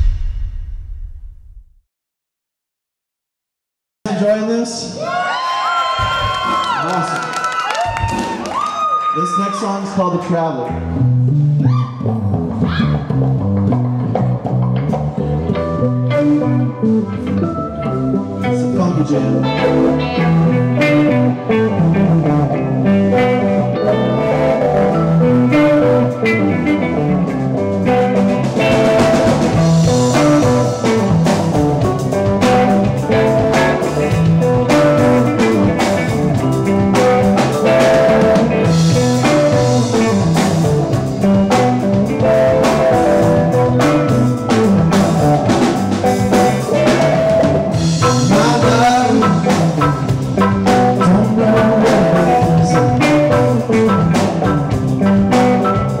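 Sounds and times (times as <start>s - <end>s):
live funk band playing: 10.7s - 56.0s.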